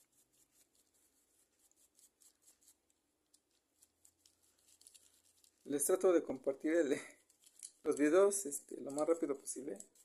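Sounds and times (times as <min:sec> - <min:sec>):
small brush scrubbing toy car: 0:00.0 - 0:06.0, 0:08.9 - 0:10.0.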